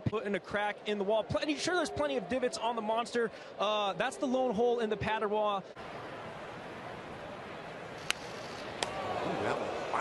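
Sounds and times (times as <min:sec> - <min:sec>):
crowd murmur: 0:05.7 - 0:10.0.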